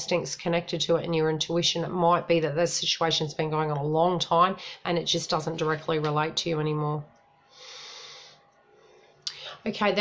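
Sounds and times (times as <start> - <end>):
person exhaling through nose: 7.5 - 8.4.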